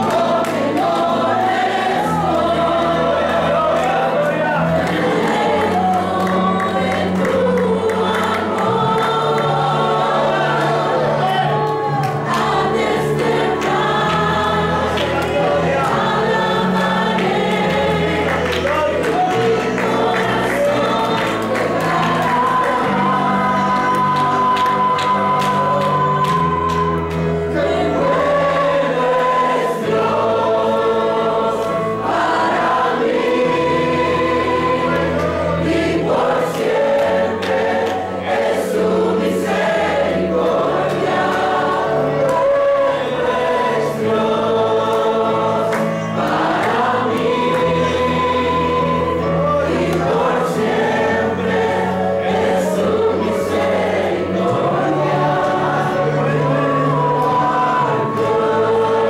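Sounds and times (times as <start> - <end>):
instrumental accompaniment: 0.0 - 59.0
youth choir singing gospel: 0.0 - 59.0.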